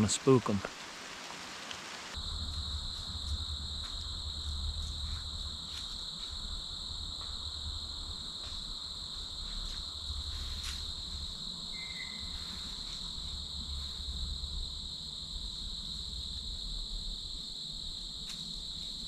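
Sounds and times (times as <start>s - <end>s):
crickets trilling: 0.0s - 19.0s
low rumble: 2.2s - 8.2s
high chirp: 11.8s - 12.5s.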